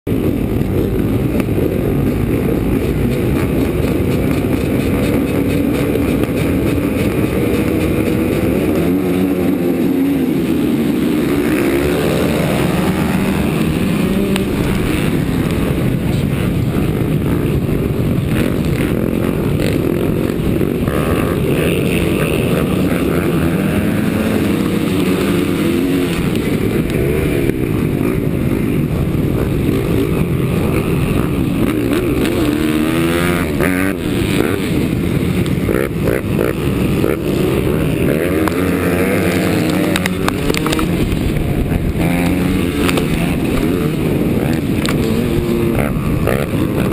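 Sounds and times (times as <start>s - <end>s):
dirt bikes racing: 0.1s - 46.9s
two-stroke motocross engine revving: 0.1s - 46.9s.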